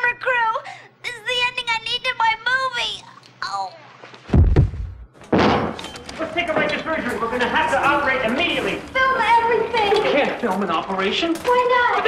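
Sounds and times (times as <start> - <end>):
heavy door slam: 4.3 - 5.8.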